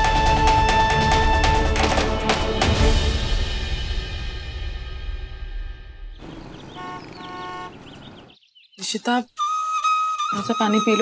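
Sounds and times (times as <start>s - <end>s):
car horn honking: 6.2s - 8.3s
street traffic: 6.2s - 9.0s.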